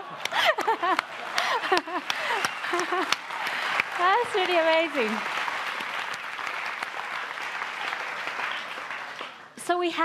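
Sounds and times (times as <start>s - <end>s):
audience applauding: 0.0s - 9.6s.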